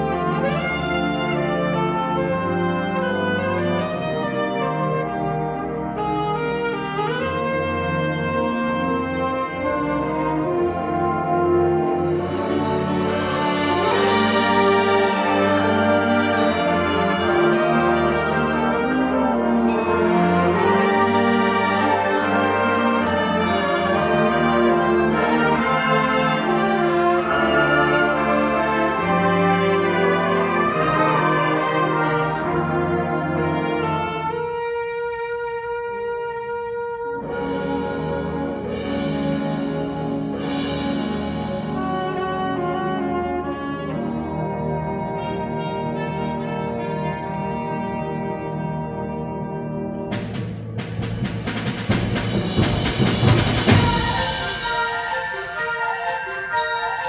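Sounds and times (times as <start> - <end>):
concert band playing loudly: 37.2 - 44.6, 47.5 - 57.0
high shimmer: 53.7 - 57.0.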